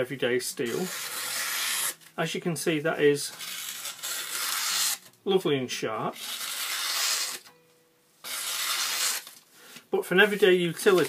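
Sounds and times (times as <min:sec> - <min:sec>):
knife slicing through paper: 0:00.7 - 0:02.0, 0:03.3 - 0:05.1, 0:06.2 - 0:07.5, 0:08.2 - 0:09.4, 0:10.8 - 0:11.0.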